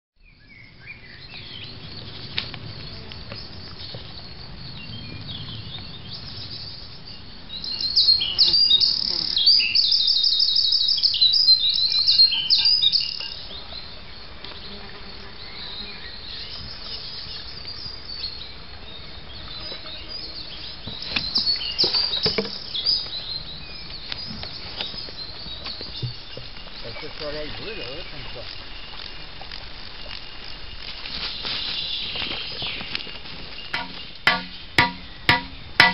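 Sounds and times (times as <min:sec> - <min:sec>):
insects buzzing: 0:01.0 - 0:35.9
songbird chirping and trilling: 0:02.8 - 0:35.9.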